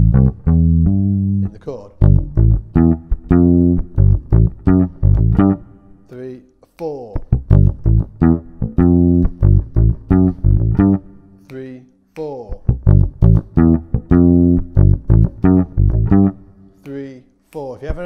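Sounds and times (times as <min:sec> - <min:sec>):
electric bass riff plucked: 0:00.0 - 0:05.8, 0:07.3 - 0:11.2, 0:12.6 - 0:16.5.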